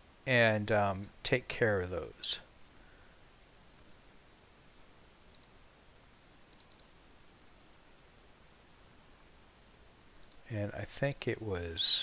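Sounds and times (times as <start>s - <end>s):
computer mouse clicks: 5.3s - 5.6s, 6.5s - 7.0s, 10.2s - 10.4s.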